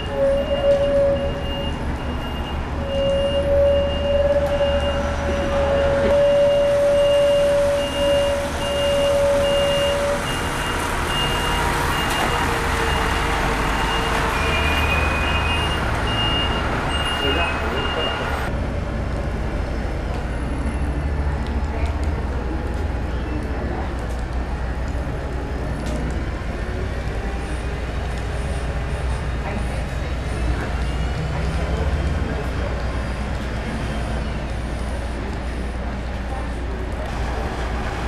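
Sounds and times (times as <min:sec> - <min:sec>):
reversing alarm beeping: 0:00.0 - 0:18.5
diesel bus engines running: 0:00.0 - 0:38.0.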